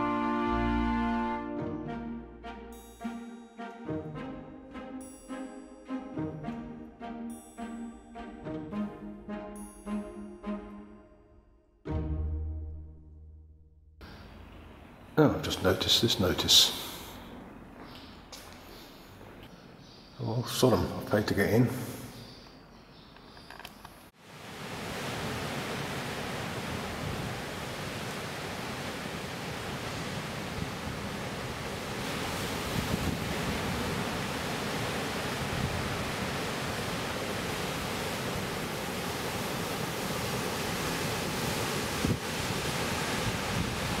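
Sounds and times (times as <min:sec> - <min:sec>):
surf breaking on rocky shore: 0:24.3 - 0:44.0.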